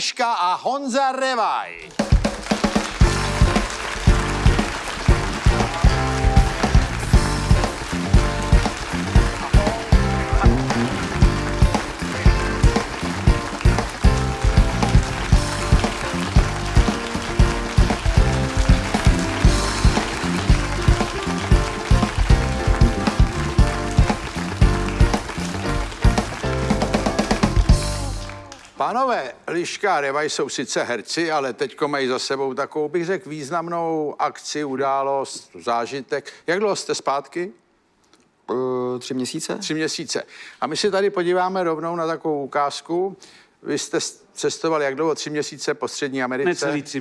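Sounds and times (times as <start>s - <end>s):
up-tempo band music: 1.8s - 28.8s
steady drum beat: 1.9s - 28.5s.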